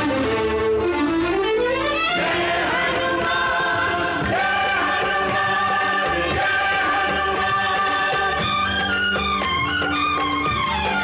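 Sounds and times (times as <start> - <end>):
choir singing held notes: 2.2 - 8.6.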